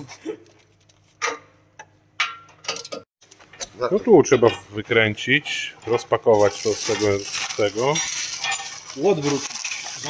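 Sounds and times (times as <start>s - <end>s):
metal parts clicking and knocking: 5.9s - 10.0s.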